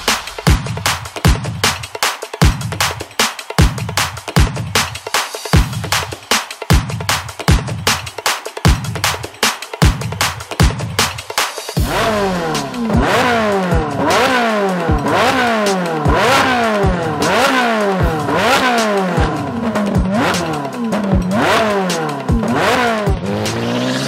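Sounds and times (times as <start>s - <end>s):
electronic music with beat: 0.0s - 24.0s
car engine revving: 11.8s - 24.0s.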